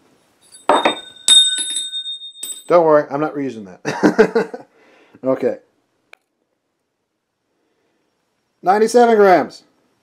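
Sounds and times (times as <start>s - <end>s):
high metallic ringing: 0.4s - 2.9s
metal valve hitting concrete: 0.5s - 2.7s.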